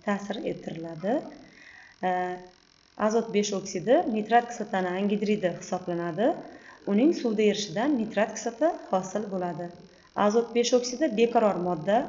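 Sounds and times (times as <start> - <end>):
woman speaking: 0.0 - 1.4, 2.0 - 12.0.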